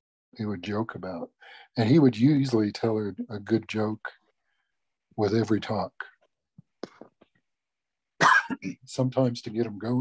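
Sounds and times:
man speaking: 0.4s - 4.2s, 5.2s - 6.2s, 8.7s - 10.0s
cough: 8.2s - 8.9s.

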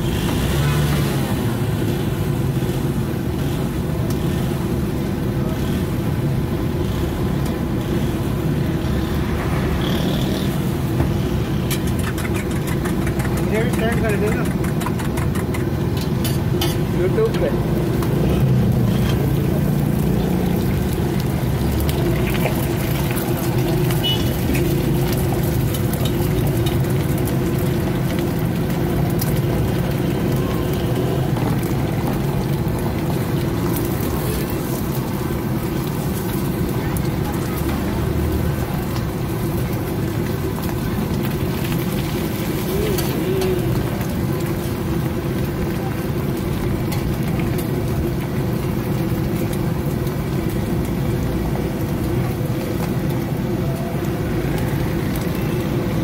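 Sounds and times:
eggs frying on griddle: 0.0s - 56.0s
street food stall rumble: 0.0s - 56.0s
indistinct voices: 42.6s - 44.2s.

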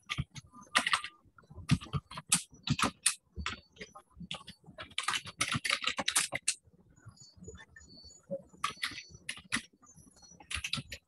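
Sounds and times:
keyboard typing clicks: 10.5s - 11.0s.

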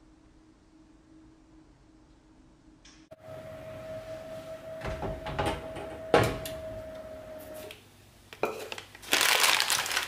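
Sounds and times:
plastic bag crinkling: 8.6s - 10.0s.

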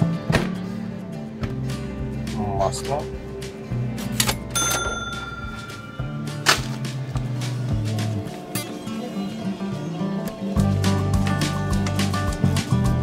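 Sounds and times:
background music: 0.0s - 13.0s
cash register ka-ching: 4.6s - 6.6s.

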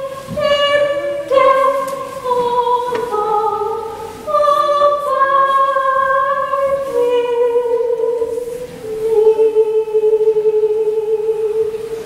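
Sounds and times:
woman singing slow melody: 0.0s - 12.0s.

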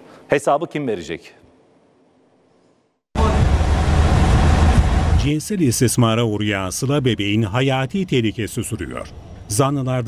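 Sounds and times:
deep rumble under a hiss: 3.2s - 9.5s.

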